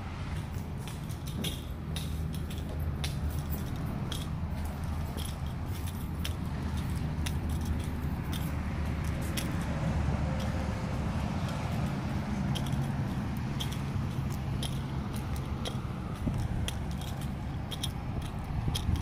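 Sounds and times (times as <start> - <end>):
highway traffic: 0.0 - 19.0
truck engines rumbling: 0.0 - 19.0.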